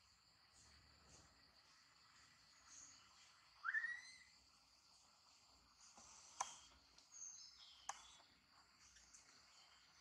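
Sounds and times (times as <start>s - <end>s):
insects hissing: 0.0s - 10.0s
monkey whistle-like coo call: 3.6s - 4.3s.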